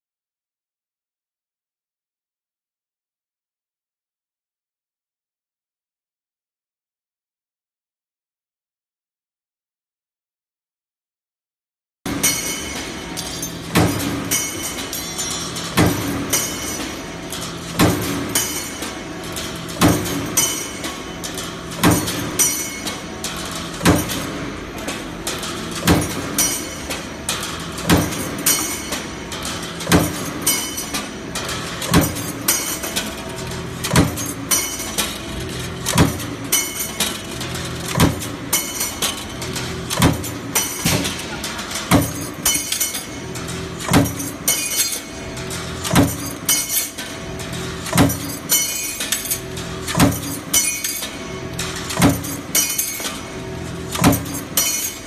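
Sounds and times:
punch press striking metal: 12.1s - 55.0s.

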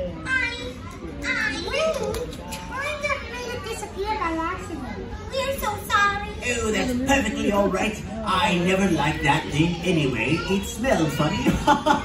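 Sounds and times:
high-pitched voices talking: 0.0s - 12.0s.

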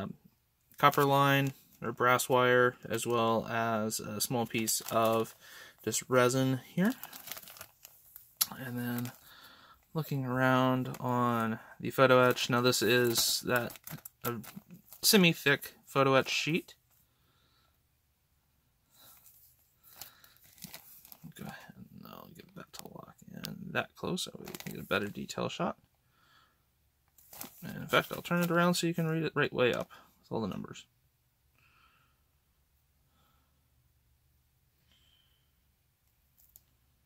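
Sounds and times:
plastic bag crinkling: 0.8s - 1.8s, 3.9s - 16.5s, 19.1s - 21.6s, 24.3s - 25.3s, 27.2s - 28.8s.

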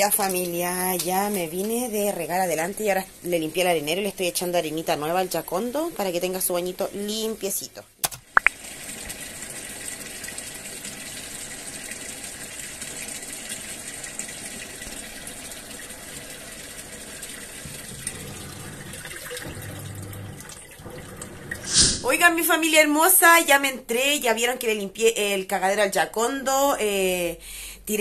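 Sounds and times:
water pouring into washing machine: 8.5s - 21.7s.

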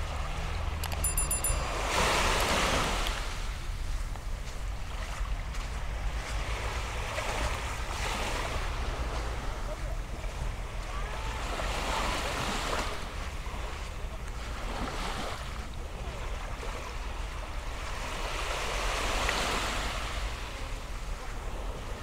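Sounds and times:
small waves lapping on sand: 0.0s - 22.0s.

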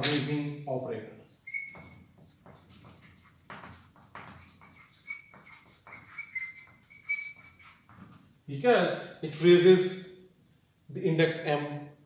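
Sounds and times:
chalk scratching on blackboard: 1.3s - 8.2s.

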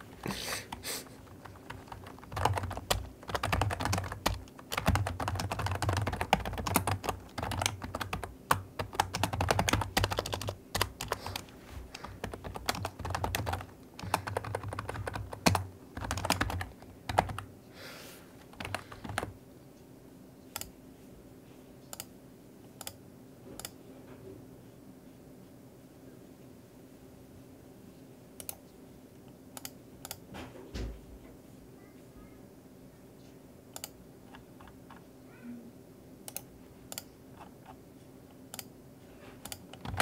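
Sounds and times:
computer keyboard typing: 0.7s - 17.5s, 18.4s - 19.4s, 33.7s - 35.0s, 36.3s - 37.8s, 39.4s - 40.0s.

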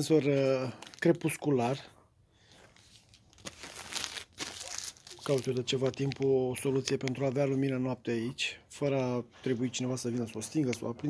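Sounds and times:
soft rustling: 1.8s - 7.5s.

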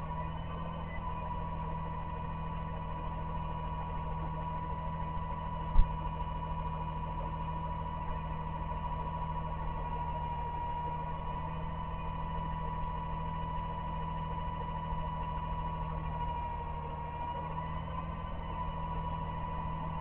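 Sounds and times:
truck engine idling with whine: 0.0s - 20.0s.

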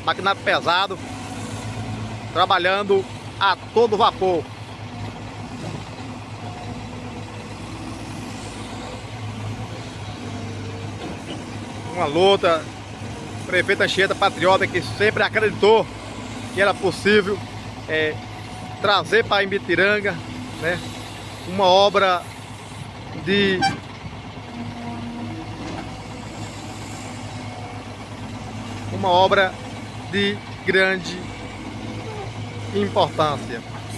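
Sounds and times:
excavator diesel engine drone: 0.0s - 33.9s.

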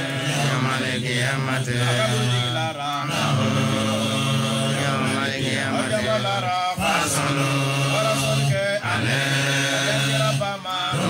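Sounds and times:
men chanting into microphones: 0.0s - 11.0s.

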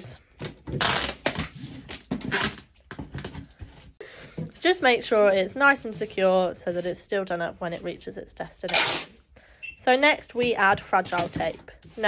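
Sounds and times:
packing tape pulled off roll: 0.7s - 2.7s.

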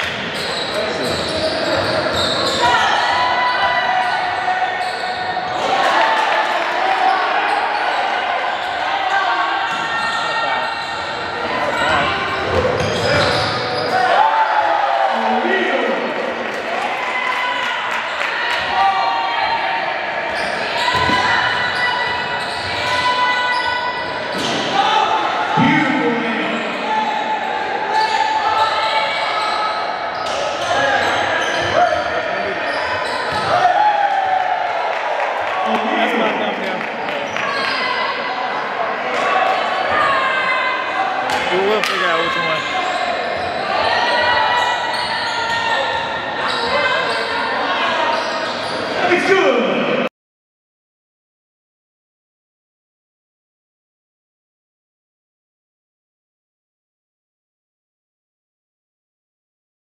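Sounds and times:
basketball bouncing on court: 12.3s - 13.6s.

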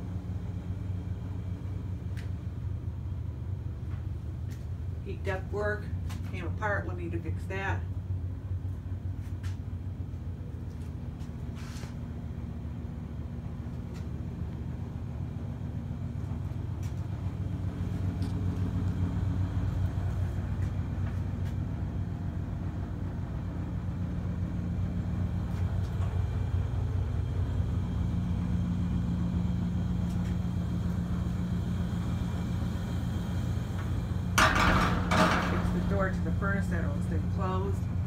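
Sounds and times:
furnace humming and rumbling: 0.0s - 38.0s
loud clatter: 34.4s - 35.8s.

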